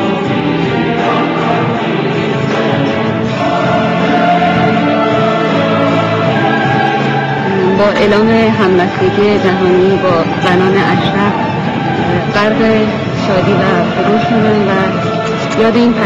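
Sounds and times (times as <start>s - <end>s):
choir singing long notes: 0.0s - 16.0s.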